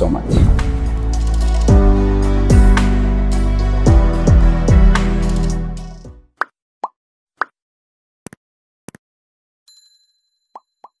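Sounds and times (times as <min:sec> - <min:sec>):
background music: 0:00.0 - 0:06.3.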